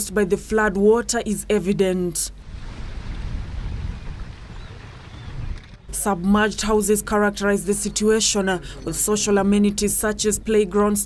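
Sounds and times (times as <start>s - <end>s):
boat rushing across water: 2.4s - 5.6s
wind buffeting microphone: 2.4s - 5.9s.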